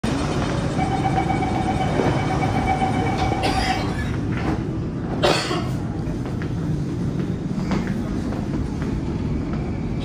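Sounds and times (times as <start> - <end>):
metro train rumble: 0.0 - 10.0
high-pitched train whine: 0.1 - 4.1.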